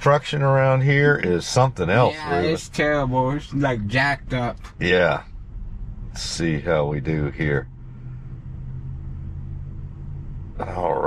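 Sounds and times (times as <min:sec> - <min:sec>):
car cabin rumble: 0:00.0 - 0:11.0
faint steady hum: 0:00.0 - 0:11.0.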